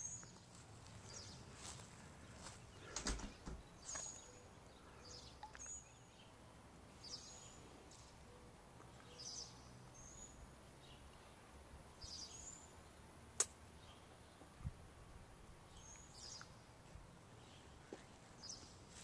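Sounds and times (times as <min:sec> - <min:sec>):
bird chirping: 0:00.0 - 0:14.7, 0:15.6 - 0:19.0
outdoor background noise: 0:00.0 - 0:19.0.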